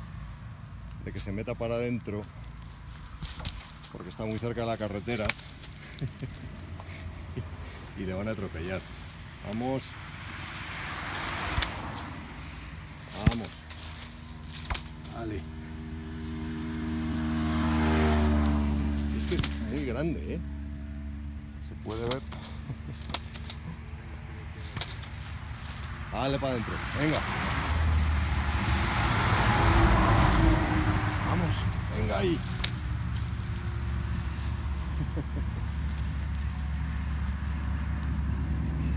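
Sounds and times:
highway traffic rumble: 0:00.0 - 0:38.9
vehicle engine hum approaching: 0:00.0 - 0:38.9.

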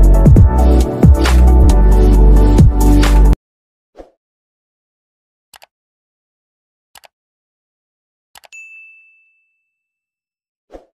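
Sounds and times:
notification bell ding: 0:08.5 - 0:10.1.

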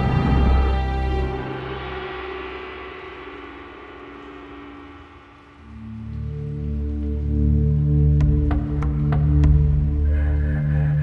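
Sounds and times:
low sustained drone tones: 0:00.0 - 0:11.0.

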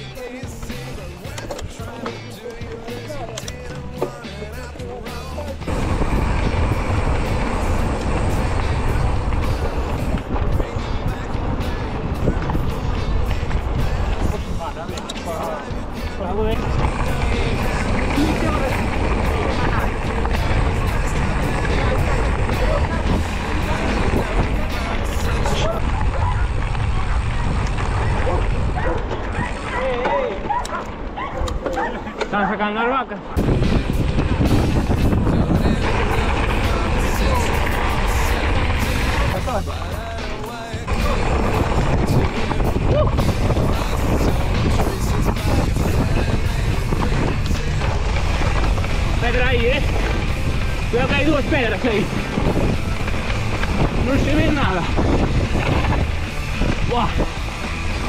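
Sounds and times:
bike tyres on gravel: 0:00.0 - 0:58.0
wind rush on microphone: 0:05.6 - 0:31.7, 0:33.3 - 0:58.0.

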